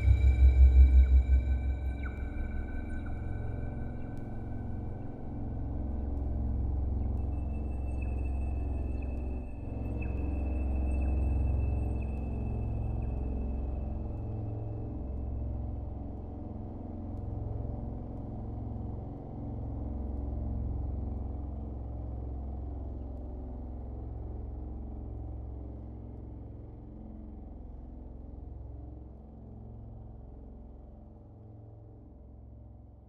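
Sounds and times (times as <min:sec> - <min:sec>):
low ambient drone: 0:00.0 - 0:32.6.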